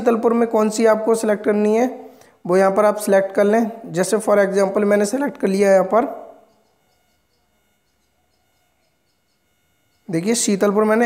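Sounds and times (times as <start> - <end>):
thin steady tones: 0.0 - 11.0.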